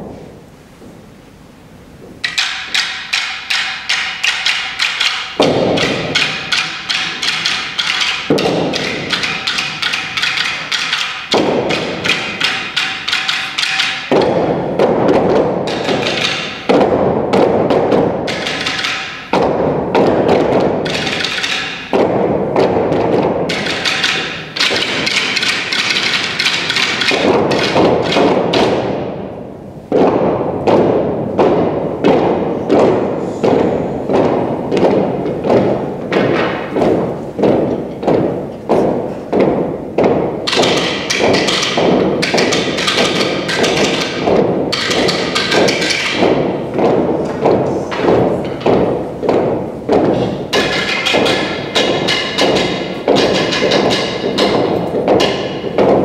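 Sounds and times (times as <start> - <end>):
sticks striking floor and each other: 2.1 - 56.0.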